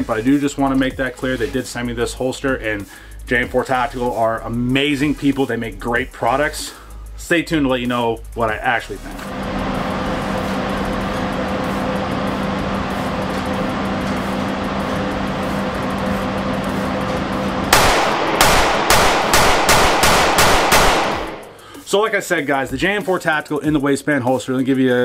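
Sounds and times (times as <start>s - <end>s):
ventilation system hum: 9.0s - 21.7s
pistol shots echoing: 17.7s - 21.6s.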